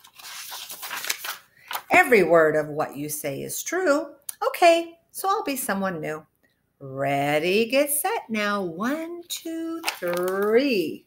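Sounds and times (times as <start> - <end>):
paper page turning: 0.0 - 1.9, 9.8 - 10.8
woman speaking: 1.9 - 11.0.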